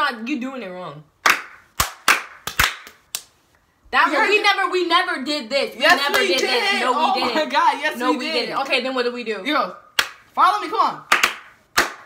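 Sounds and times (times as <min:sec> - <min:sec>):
hand claps: 0:01.2 - 0:03.3, 0:10.0 - 0:10.3, 0:11.0 - 0:12.0.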